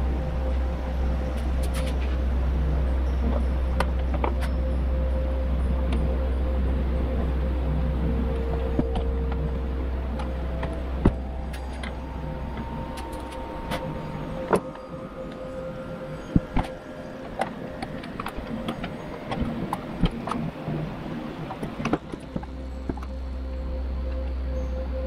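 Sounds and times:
low steady hum: 0:00.0 - 0:25.0.

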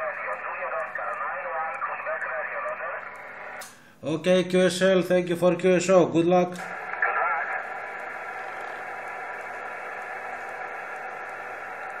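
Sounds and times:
radio static hiss: 0:00.0 - 0:03.6, 0:06.6 - 0:12.0.

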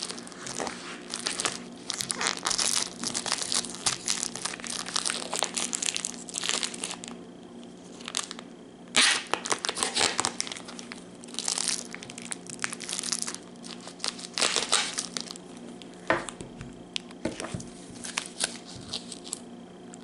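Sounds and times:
plastic wrapper crinkling and tearing: 0:00.0 - 0:07.2, 0:07.8 - 0:16.4, 0:18.0 - 0:19.4.

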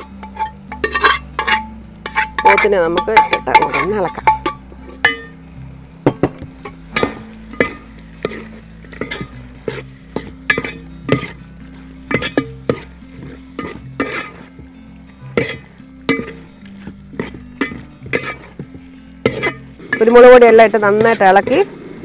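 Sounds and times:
metal ladle scraping a pot: 0:00.0 - 0:05.4, 0:06.1 - 0:22.0
ladle knocking on pot: 0:06.1 - 0:08.4.

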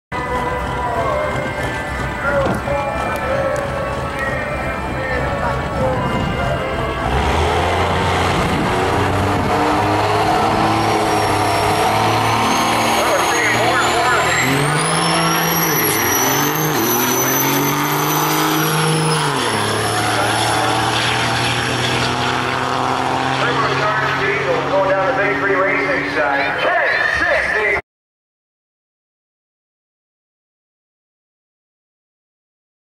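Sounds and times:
diesel truck engine at full throttle: 0:00.1 - 0:27.8
high turbo whine: 0:00.1 - 0:27.8.

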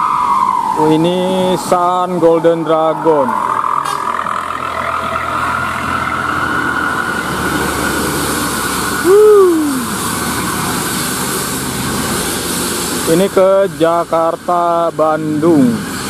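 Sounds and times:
loud gliding call: 0:00.0 - 0:10.5
bus engine climbing: 0:00.0 - 0:16.0.

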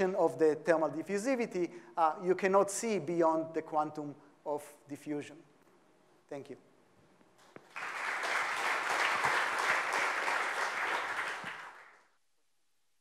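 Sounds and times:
audience applauding: 0:07.6 - 0:12.1.

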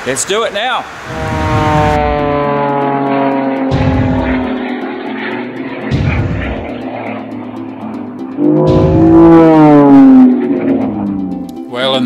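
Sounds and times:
lower tone: 0:01.0 - 0:11.7
note sliding down in pitch: 0:01.1 - 0:11.7.

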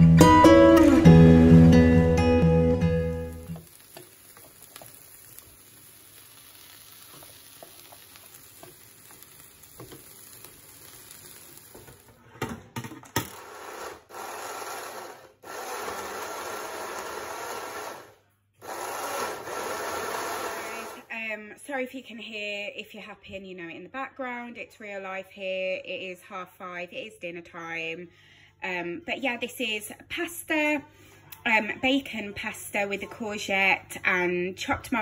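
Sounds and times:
acoustic guitar music: 0:00.0 - 0:03.6
food sizzling in a pan: 0:03.0 - 0:12.3.

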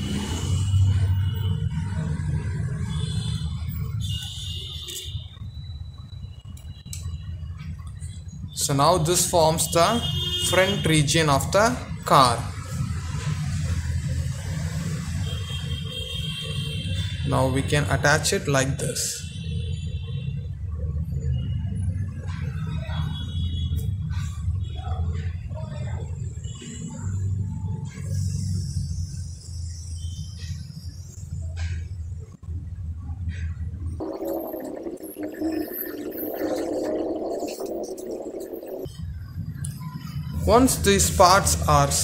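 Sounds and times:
low hum: 0:32.4 - 0:41.6
higher rough noise: 0:34.0 - 0:39.6.

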